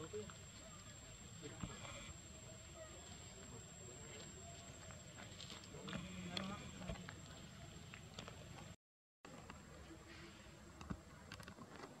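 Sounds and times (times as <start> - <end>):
steady background hiss: 0.0 - 7.9.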